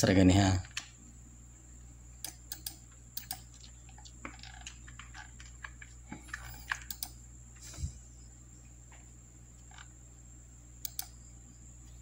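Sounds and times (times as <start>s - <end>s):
steady low hum: 0.0s - 12.0s
mouse and keyboard clicking: 2.2s - 7.2s, 10.8s - 11.2s.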